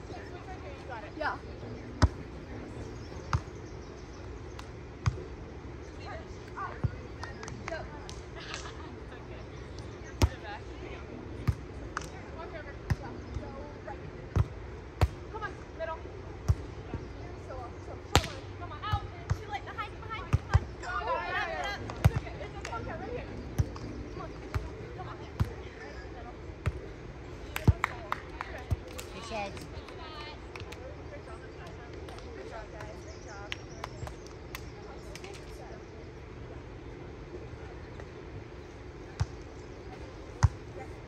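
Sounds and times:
palm smacking volleyball: 0:18.1 - 0:19.4.

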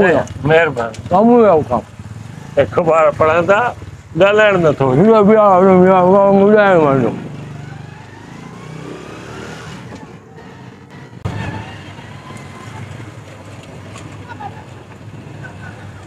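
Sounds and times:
small motorcycle engine: 0:00.0 - 0:16.0.

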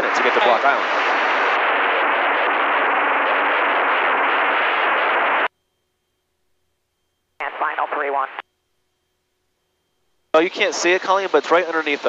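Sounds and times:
radio static hiss: 0:00.0 - 0:05.5, 0:07.4 - 0:08.5, 0:10.4 - 0:12.0.

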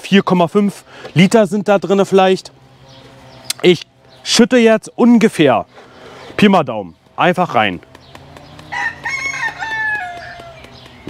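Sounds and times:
rooster crowing: 0:08.6 - 0:10.7.

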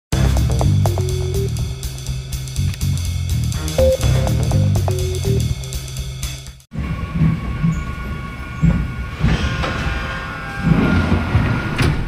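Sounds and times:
music: 0:00.1 - 0:06.7
high whine: 0:03.8 - 0:06.2
train running on rails: 0:06.8 - 0:12.0.

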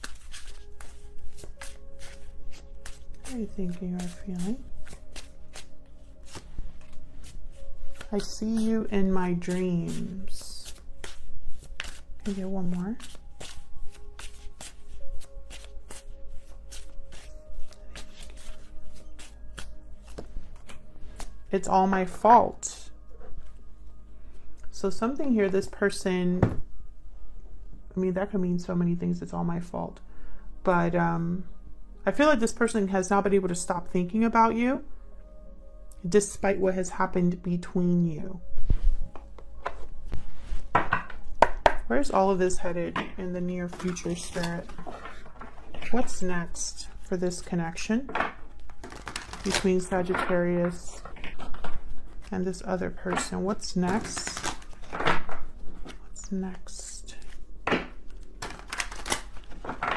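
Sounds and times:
cards being shuffled: 0:00.0 - 0:21.4, 0:43.7 - 0:46.0, 0:48.7 - 0:49.9, 0:53.1 - 0:56.0, 0:58.0 - 0:59.9
soft background music: 0:00.0 - 0:59.9.

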